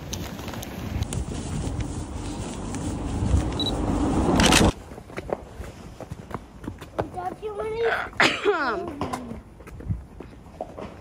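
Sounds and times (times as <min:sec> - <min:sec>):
child calling out: 0:07.5 - 0:09.2.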